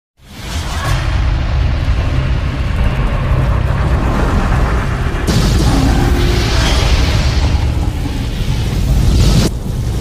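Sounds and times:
explosion-like blast: 0.9 - 10.0
deep steady rumble: 1.1 - 10.0.

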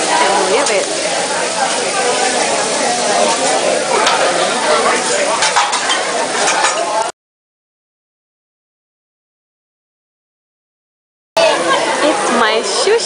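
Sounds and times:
food sizzling on a griddle: 0.0 - 7.1
metal spatula scraping steel plate: 3.2 - 7.0.

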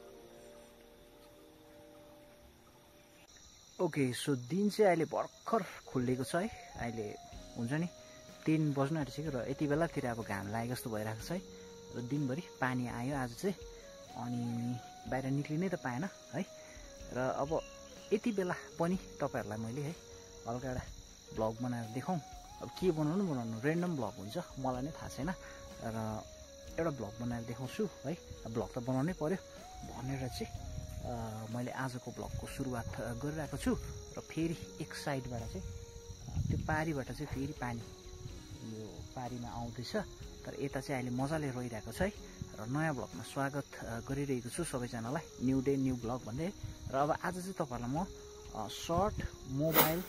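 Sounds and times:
crickets chirring: 0.0 - 50.0
high-pitched insect drone: 0.0 - 50.0
man talking: 49.6 - 50.0.

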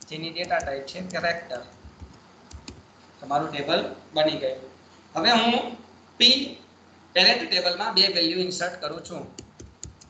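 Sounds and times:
man speaking: 0.0 - 1.7
keyboard keystrokes: 0.4 - 2.8, 9.4 - 10.0.

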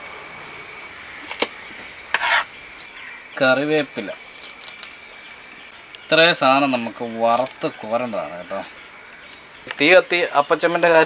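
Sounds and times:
sharp clicks: 4.3 - 5.0, 7.3 - 7.7.

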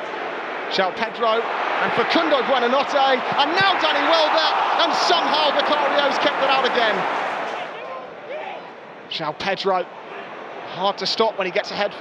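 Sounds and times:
stadium crowd noise: 0.0 - 12.0
individual voices shouting: 1.6 - 8.6.

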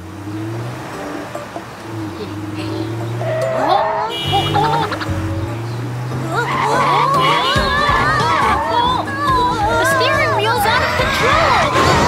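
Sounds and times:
higher tones and pitch glides: 0.0 - 12.0
truck engine hum: 0.0 - 12.0.

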